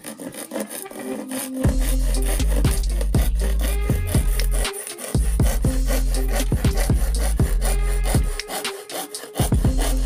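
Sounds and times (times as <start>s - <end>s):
background music: 0.0s - 10.0s
handsaw cutting plywood: 0.0s - 10.0s.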